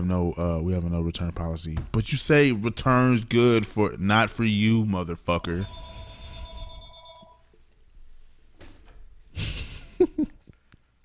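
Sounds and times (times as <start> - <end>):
ringing bell-like tone: 5.6 - 7.5.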